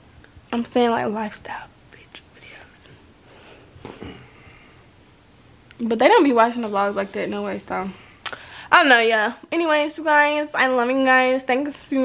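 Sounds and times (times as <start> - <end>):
soft whispering: 1.2 - 3.0.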